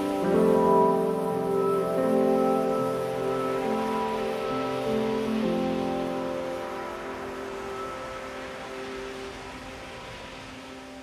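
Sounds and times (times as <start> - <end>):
ambient electronic music: 0.0 - 11.0
soft hiss: 0.0 - 11.0.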